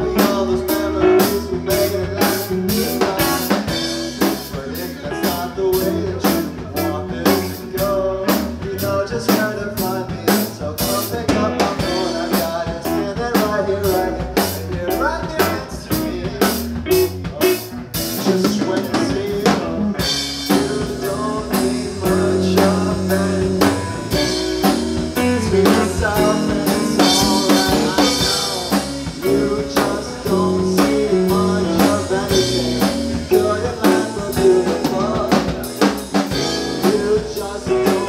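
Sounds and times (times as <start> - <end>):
live band playing a groove: 0.0 - 38.0
drum strokes: 10.4 - 38.0.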